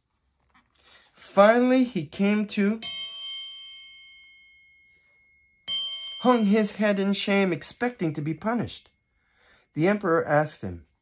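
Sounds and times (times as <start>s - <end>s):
metal chime ringing: 2.8s - 10.1s.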